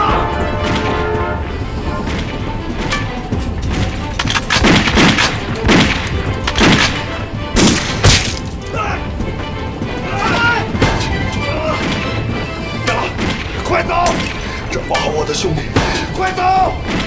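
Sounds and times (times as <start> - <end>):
dramatic film score: 0.0 - 17.0
pistol shots: 4.2 - 8.5.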